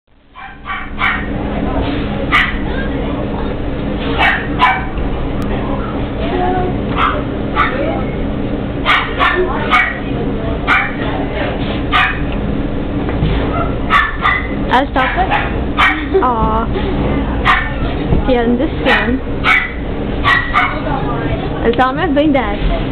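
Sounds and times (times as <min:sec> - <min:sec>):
steady low hum: 0:00.1 - 0:22.9
puppies yapping and barking: 0:00.4 - 0:01.4, 0:02.3 - 0:05.0, 0:06.9 - 0:08.0, 0:08.8 - 0:10.1, 0:10.7 - 0:11.1, 0:11.9 - 0:12.3, 0:13.4 - 0:16.2, 0:17.4 - 0:17.9, 0:18.9 - 0:20.9.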